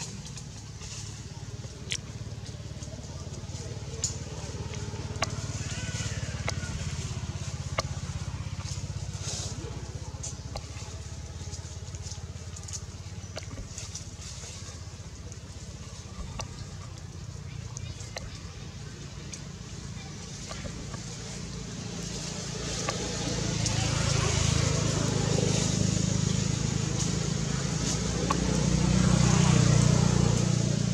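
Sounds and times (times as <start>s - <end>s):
low engine-like hum: 0.0s - 30.9s.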